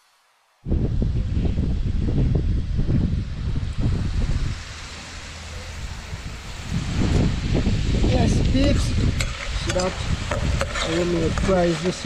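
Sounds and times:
wind buffeting microphone: 0.6s - 12.0s.

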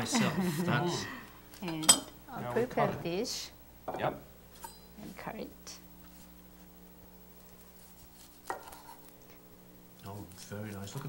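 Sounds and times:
knife slicing rice roll: 7.8s - 9.1s.

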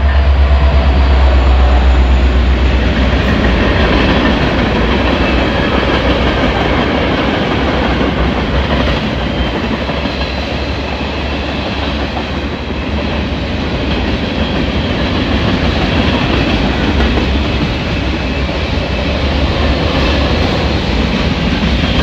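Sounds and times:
freight train wheels on rails: 0.0s - 22.0s.

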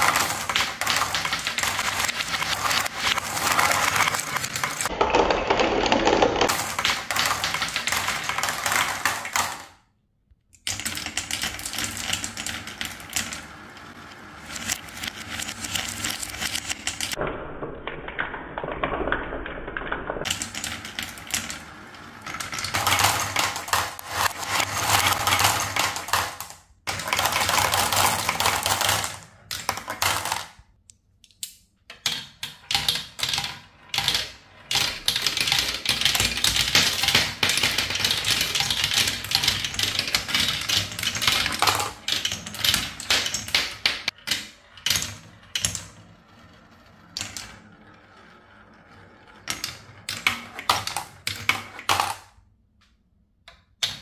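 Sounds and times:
marbles rolling and clattering: 0.0s - 9.9s, 10.6s - 30.8s, 31.9s - 52.5s.

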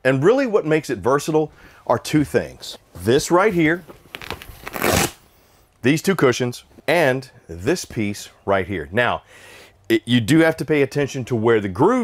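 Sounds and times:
fabric rustling and scuffing: 2.2s - 5.2s.

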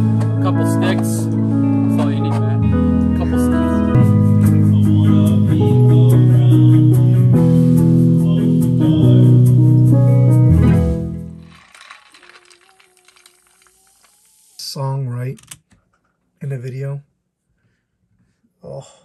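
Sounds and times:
guitar and keyboard chords: 0.0s - 11.4s.

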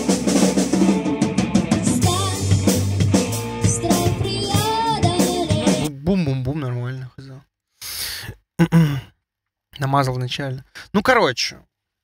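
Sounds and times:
man making wordless voiced sounds: 5.8s - 9.1s, 9.7s - 11.7s
man sighing breathily: 7.8s - 9.2s.

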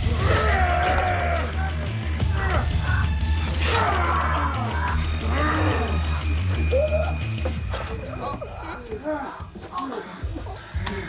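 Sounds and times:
dramatic film music: 0.0s - 11.0s
men groaning and straining: 0.0s - 11.0s.

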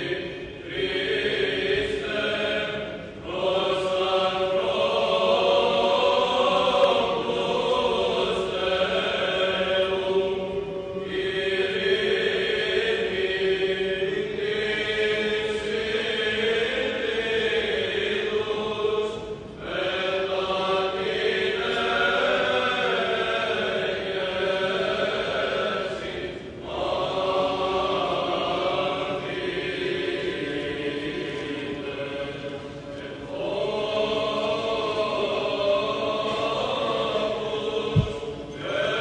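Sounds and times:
male choir chanting: 0.0s - 39.0s.

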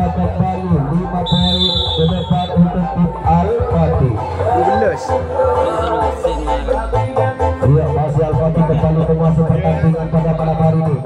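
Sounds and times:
background music: 0.0s - 11.0s
crowd chatter: 0.0s - 11.0s
referee's whistle blast: 1.2s - 2.6s.

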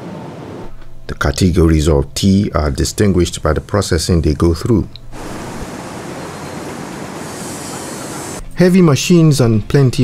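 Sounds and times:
factory machinery running: 5.2s - 8.4s.

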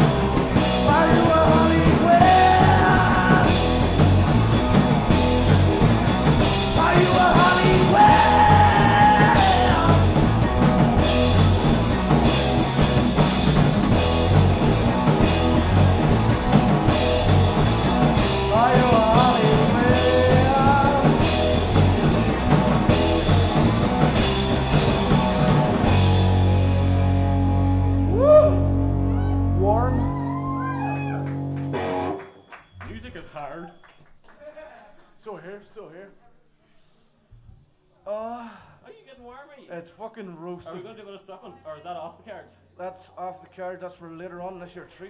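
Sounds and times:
punk rock band playing: 0.0s - 32.2s
man singing: 0.8s - 3.9s, 6.7s - 10.3s, 18.4s - 21.4s.

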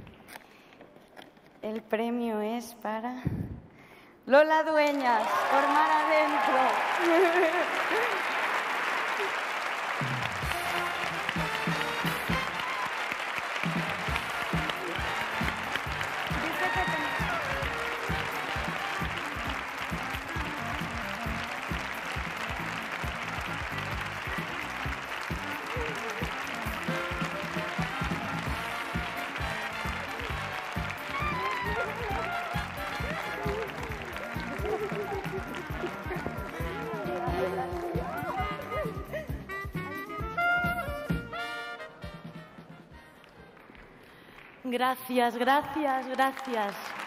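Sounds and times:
audience applauding: 5.0s - 39.2s, 45.4s - 47.0s
music with a steady beat: 10.0s - 12.6s, 13.6s - 42.5s.

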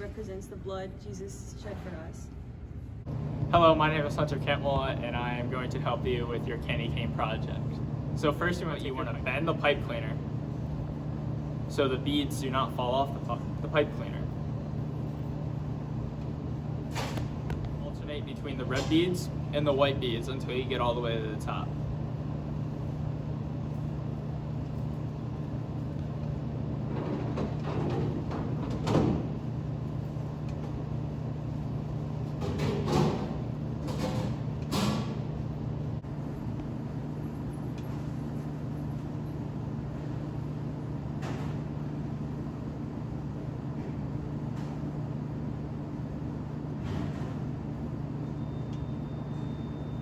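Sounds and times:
low machine hum: 0.0s - 50.0s.

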